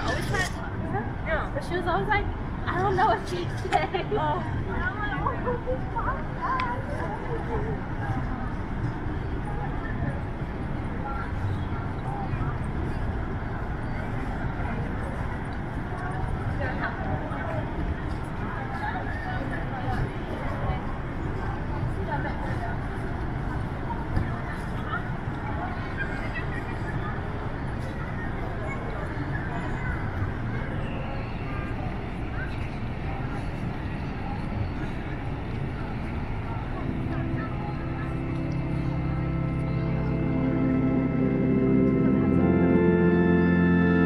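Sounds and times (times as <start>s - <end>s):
voices of people walking by: 0.0s - 44.0s
steady low rumble: 34.5s - 44.0s.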